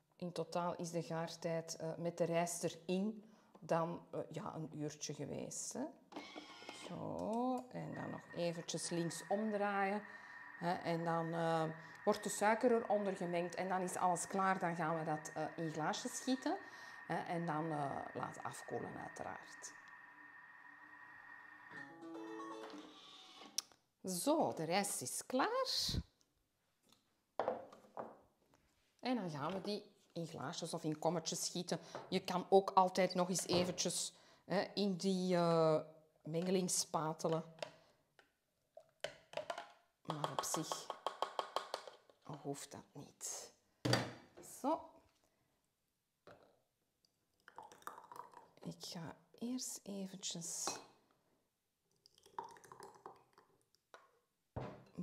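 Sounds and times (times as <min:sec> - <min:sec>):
rice pudding pouring into glass: 0:47.5 - 0:48.5, 0:52.2 - 0:53.5.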